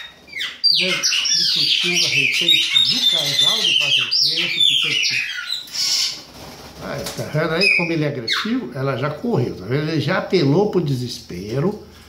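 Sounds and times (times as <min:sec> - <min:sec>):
blackbirds calling: 0:00.0 - 0:06.4, 0:07.0 - 0:09.0.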